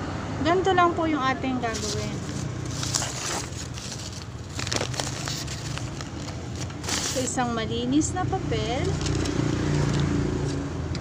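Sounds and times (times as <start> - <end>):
rustling handling noise: 1.6 - 7.8, 8.6 - 10.6.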